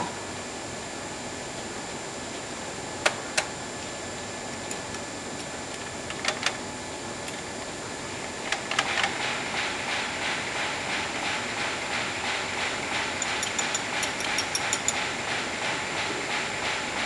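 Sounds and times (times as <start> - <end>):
printing press rhythmic beat: 9.2 - 17.0.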